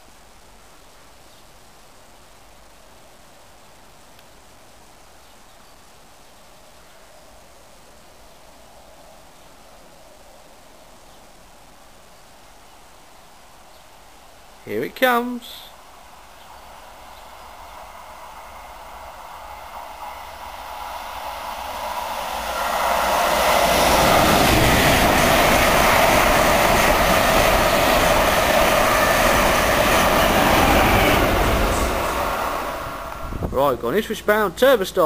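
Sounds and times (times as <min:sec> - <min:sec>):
train wheels rumbling on rail: 0:16.1 - 0:34.6.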